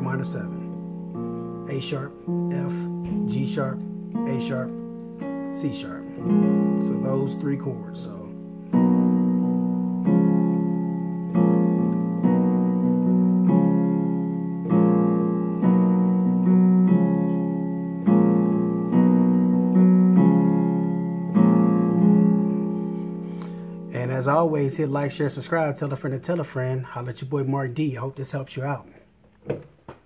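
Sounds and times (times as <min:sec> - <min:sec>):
piano chords ringing: 0:00.0 - 0:27.8.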